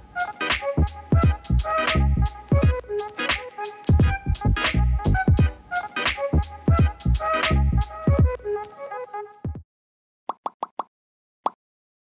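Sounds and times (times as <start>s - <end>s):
background music: 0.0s - 9.6s.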